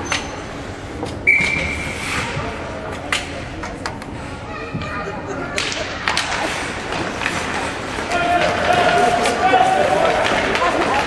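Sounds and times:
hockey sticks and puck clacking: 5.6 - 11.0.

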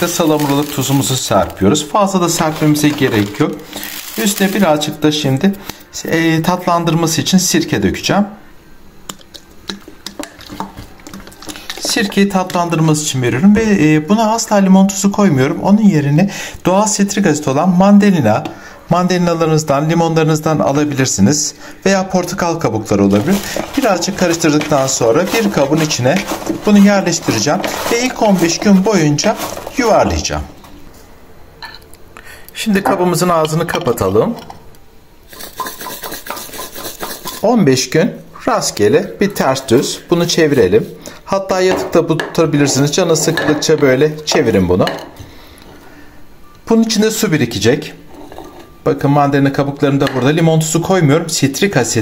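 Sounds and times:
olives rattling in glass bottle: 2.5 - 4.6, 23.1 - 30.0, 35.3 - 37.5
bottle clicking and tapping: 9.1 - 11.9.

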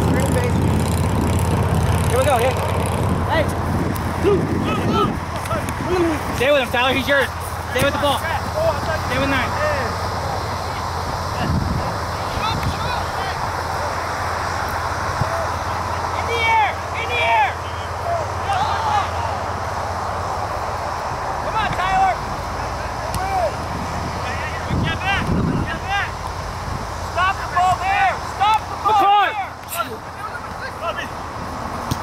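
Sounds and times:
low wind rumble: 0.0 - 29.0
players and spectators shouting: 4.1 - 26.4, 27.1 - 31.2.

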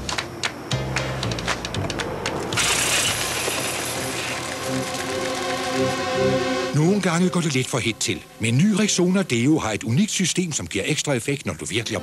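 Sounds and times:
music with held notes: 3.9 - 8.4.

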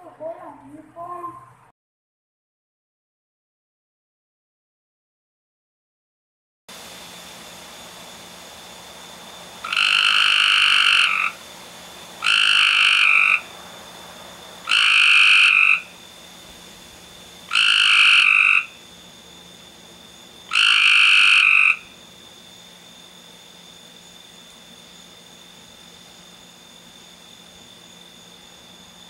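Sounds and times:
frog croaking: 9.0 - 28.6.

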